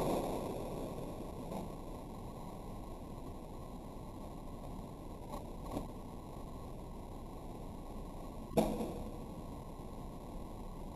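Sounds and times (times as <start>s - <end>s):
faint outdoor hiss: 0.0s - 10.9s.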